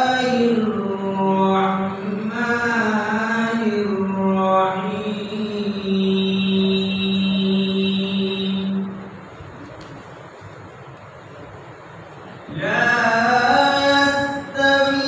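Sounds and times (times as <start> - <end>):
man chanting melodically: 0.0 - 9.1, 12.5 - 15.0.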